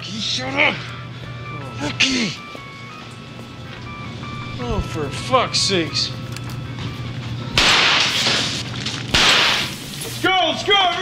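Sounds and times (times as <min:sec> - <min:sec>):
steady low hum: 0:00.0 - 0:10.6
gunshots: 0:07.6 - 0:10.0.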